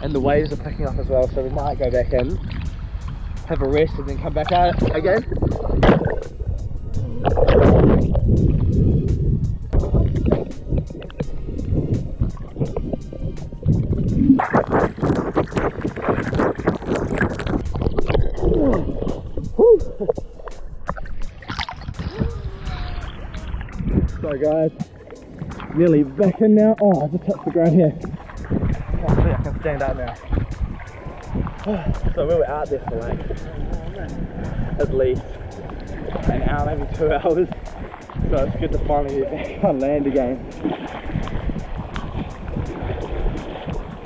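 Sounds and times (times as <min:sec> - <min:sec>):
sea water sloshing: 0:00.0 - 0:44.0
wind buffeting microphone: 0:00.0 - 0:44.0
seawater slapping and splashing: 0:02.0 - 0:06.5, 0:09.7 - 0:44.0.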